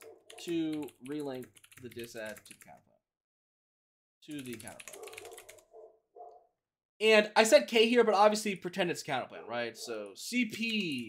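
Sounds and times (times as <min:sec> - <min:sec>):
computer keyboard typing: 0:00.0 - 0:02.8, 0:04.3 - 0:05.7
faint dog barks: 0:04.9 - 0:06.5, 0:09.3 - 0:10.1.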